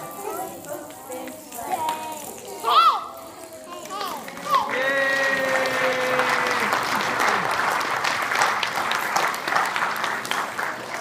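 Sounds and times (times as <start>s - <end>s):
children chattering: 0.0s - 4.8s.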